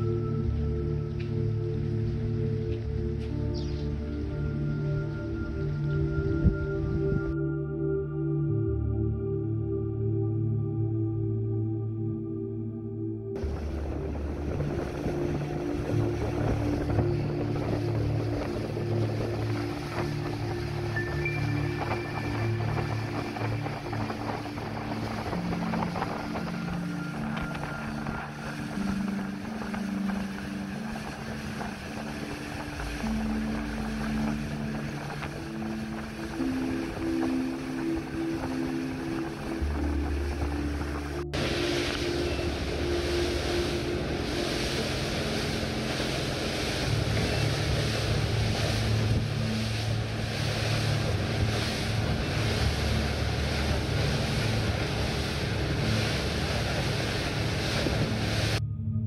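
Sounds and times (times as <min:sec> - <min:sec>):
wind buffeting microphone: 0:00.0 - 0:07.4, 0:13.4 - 0:58.6
water rushing along hull: 0:00.0 - 0:07.6, 0:13.4 - 0:58.6
background music: 0:00.0 - 0:59.0
boat engine drone: 0:00.0 - 0:59.0.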